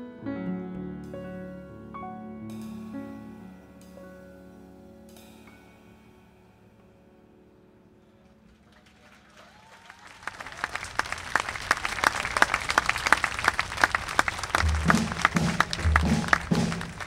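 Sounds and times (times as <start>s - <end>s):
audience applause: 8.5s - 17.0s
drum kit thuds: 14.4s - 17.0s.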